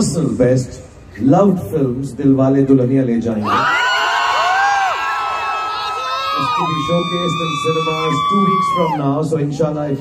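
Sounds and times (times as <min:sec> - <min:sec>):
crowd cheering and screaming: 0:03.4 - 0:10.0.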